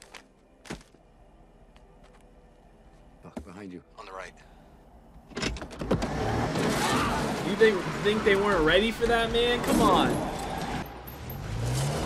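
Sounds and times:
rushing vehicle: 5.3s - 12.0s.

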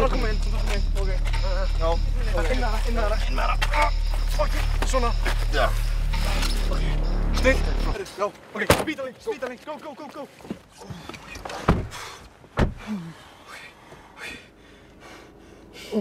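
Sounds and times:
steady low hum: 0.0s - 8.5s, 11.7s - 16.0s
indistinct voices: 0.0s - 10.0s.

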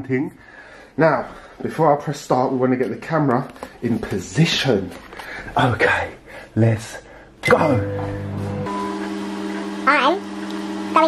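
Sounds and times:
microwave oven humming: 7.5s - 11.0s.

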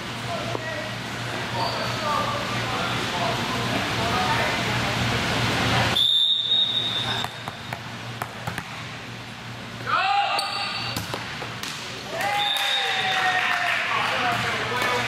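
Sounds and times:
referee's whistle: 5.9s - 7.5s, 12.3s - 13.0s
ball struck and hitting floor: 7.2s - 8.8s, 10.9s - 11.9s.

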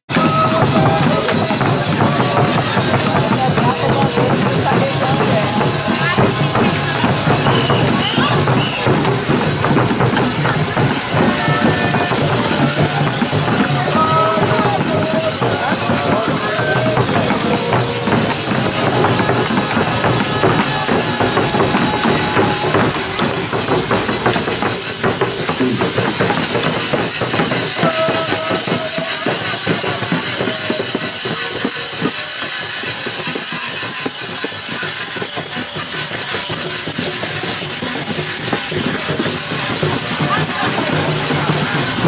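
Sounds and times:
jingling tambourines: 0.1s - 42.0s
snare and bass drums beating: 0.1s - 42.0s.

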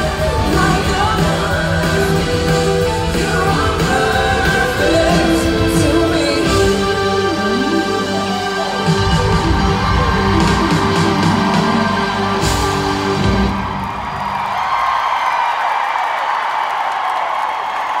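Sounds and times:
live band playing pop ballad: 0.0s - 14.1s
crowd cheering: 0.0s - 18.0s.

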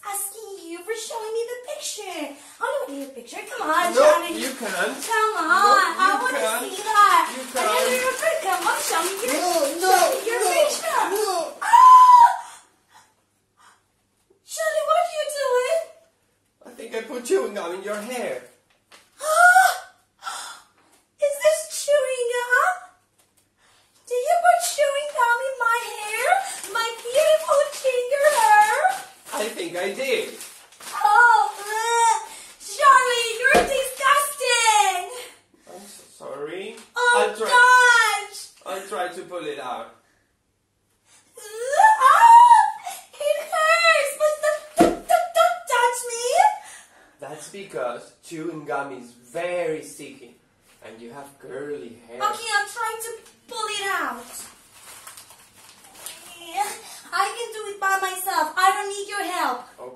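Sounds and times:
woman wailing and sobbing: 11.6s - 12.7s, 41.4s - 44.1s.

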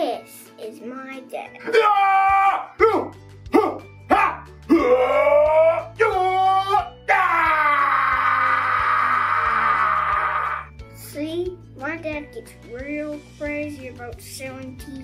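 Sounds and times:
man wailing: 1.6s - 10.7s
background music with bass line: 1.6s - 15.0s.

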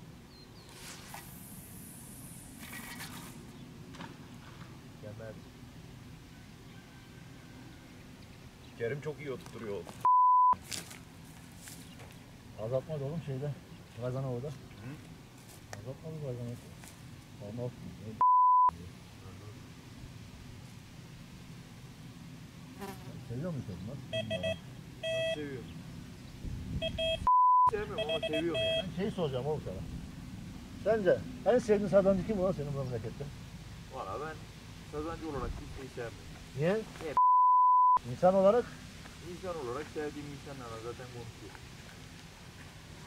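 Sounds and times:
fishing line hissing off reel: 0.7s - 3.5s.

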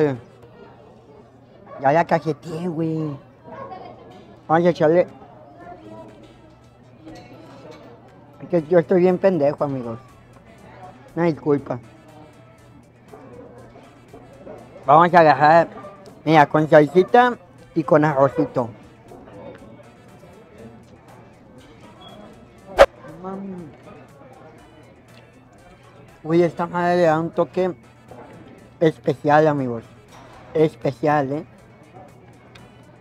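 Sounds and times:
faint voices: 0.0s - 26.3s
quiet background music: 0.0s - 33.0s.

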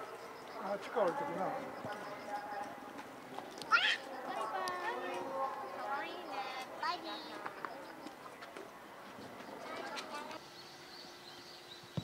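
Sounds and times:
people talking: 0.6s - 3.0s, 3.6s - 8.6s, 9.4s - 10.4s.

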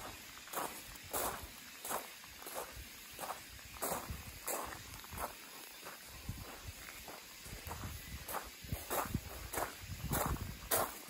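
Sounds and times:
footsteps on gravel: 0.0s - 11.0s.

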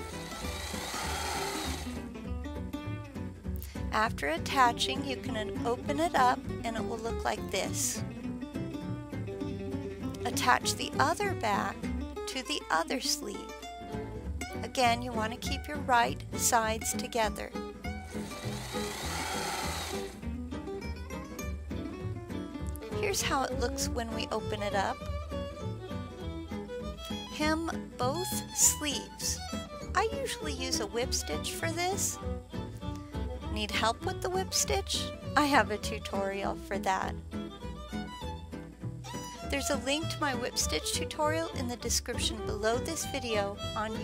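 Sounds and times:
sewing machine running: 0.0s - 2.0s, 18.1s - 20.2s
background music: 0.0s - 44.0s.

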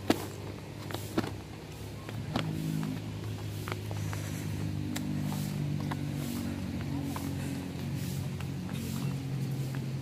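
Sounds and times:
engine running: 0.0s - 10.0s.

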